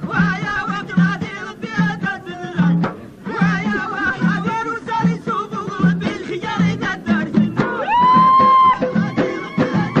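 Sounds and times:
men singing folk song: 0:00.0 - 0:10.0.

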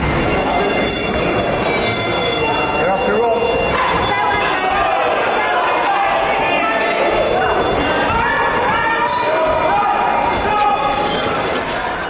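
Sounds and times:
people shouting in echoing hall: 0:02.2 - 0:12.0.

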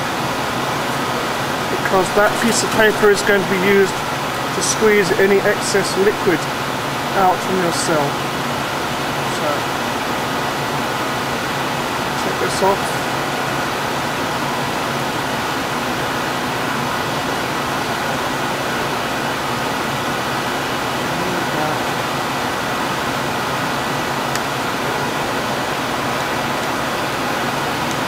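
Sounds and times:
air-handling noise: 0:01.6 - 0:08.2.

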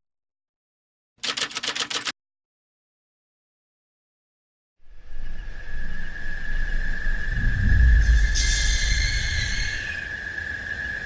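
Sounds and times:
typewriter keystrokes clacking: 0:01.2 - 0:02.1.

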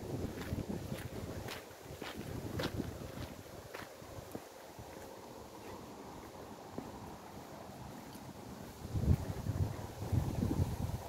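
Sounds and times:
footsteps on paved path: 0:00.0 - 0:11.0
wind rumble on microphone: 0:00.0 - 0:11.0.

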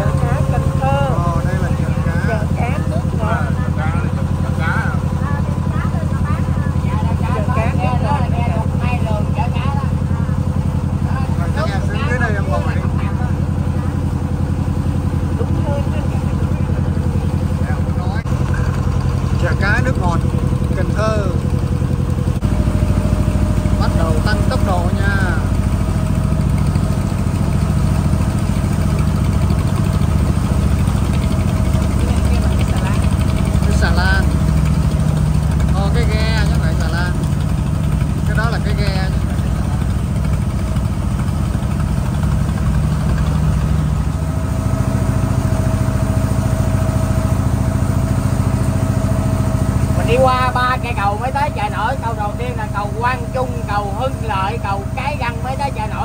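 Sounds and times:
voices: 0:00.0 - 0:21.6, 0:22.8 - 0:25.8, 0:28.6 - 0:41.4, 0:49.1 - 0:56.0
boat engine running: 0:00.0 - 0:56.0.

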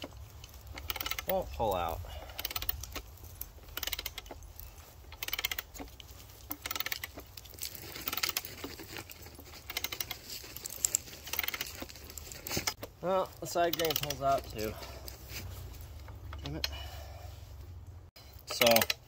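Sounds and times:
ratchet pawl clicking: 0:00.0 - 0:01.3, 0:02.2 - 0:04.4, 0:05.1 - 0:08.5, 0:09.6 - 0:10.2, 0:11.3 - 0:11.8, 0:13.7 - 0:14.2, 0:18.5 - 0:19.0.

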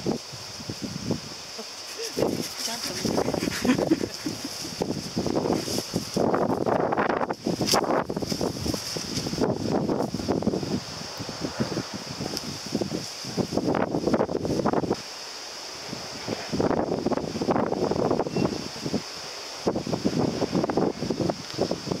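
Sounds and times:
wind buffeting microphone: 0:00.0 - 0:15.1, 0:15.7 - 0:22.0
high-pitched hiss: 0:00.0 - 0:22.0.

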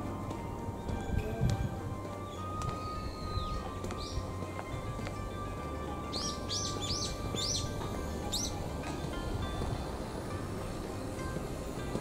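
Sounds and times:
background music: 0:00.0 - 0:12.0
bird chirping: 0:02.2 - 0:04.3, 0:06.1 - 0:08.6.

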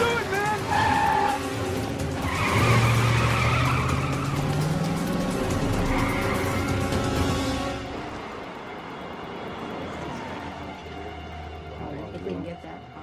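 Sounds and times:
tyres squealing: 0:00.0 - 0:01.6
car engine revving: 0:00.0 - 0:07.9.

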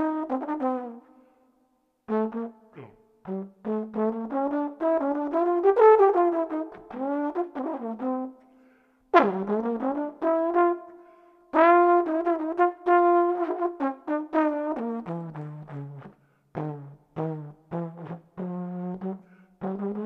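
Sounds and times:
jazz trombone: 0:00.0 - 0:01.0, 0:02.1 - 0:02.6, 0:03.2 - 0:08.3, 0:09.2 - 0:10.9, 0:11.5 - 0:20.0.

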